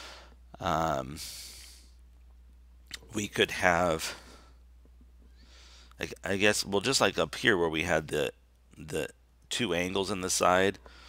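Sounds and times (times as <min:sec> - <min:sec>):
soft breath intake: 0:00.0 - 0:00.4, 0:01.2 - 0:02.0, 0:05.3 - 0:06.0, 0:10.8 - 0:11.0
low room hum: 0:00.0 - 0:11.0
man speaking: 0:00.6 - 0:01.9, 0:02.9 - 0:04.3, 0:06.0 - 0:10.8.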